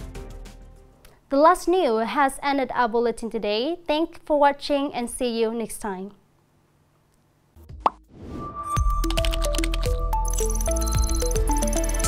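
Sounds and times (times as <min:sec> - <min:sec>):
electronic music with deep bass: 0:08.8 - 0:12.0.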